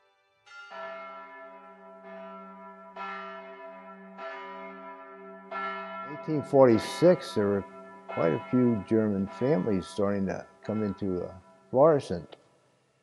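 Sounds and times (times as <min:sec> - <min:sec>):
church bell ringing: 0:00.4 - 0:12.2.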